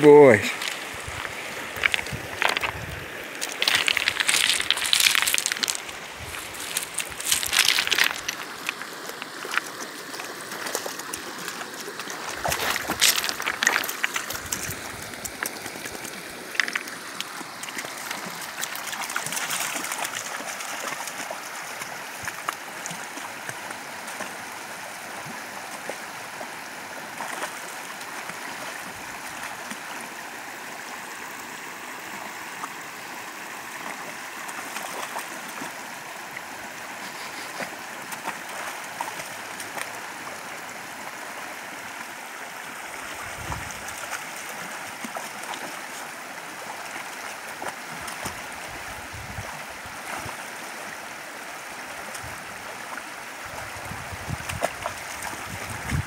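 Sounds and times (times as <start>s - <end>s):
creek water running over rocks: 0.0s - 56.0s.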